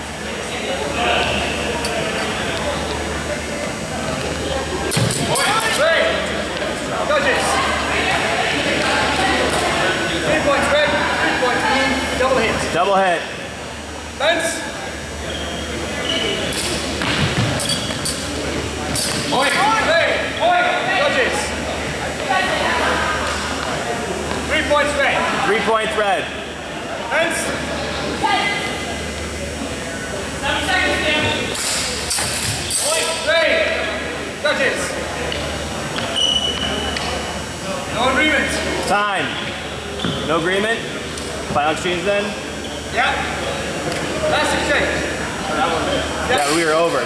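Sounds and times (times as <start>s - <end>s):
murmur of voices in a hall: 0.0s - 47.0s.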